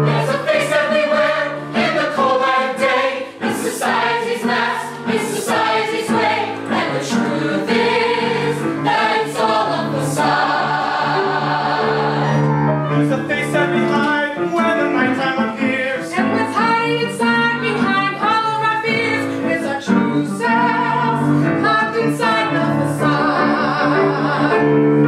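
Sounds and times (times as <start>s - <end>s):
choir singing: 0.0s - 13.1s, 19.7s - 25.0s
instrumental accompaniment: 0.0s - 25.0s.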